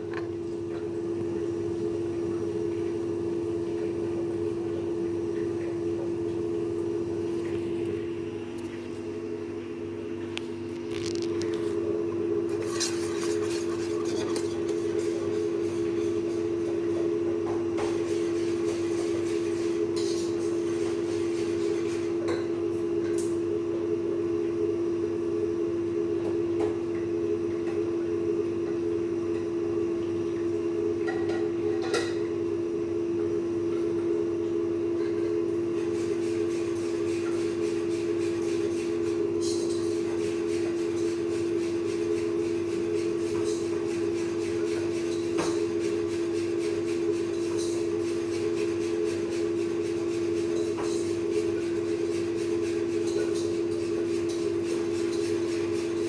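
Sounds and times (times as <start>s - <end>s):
low mechanical hum: 0.0s - 56.0s.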